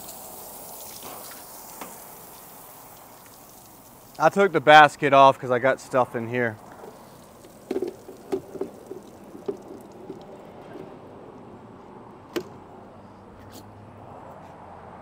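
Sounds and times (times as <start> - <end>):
water dripping and trickling: 0.0 - 11.6.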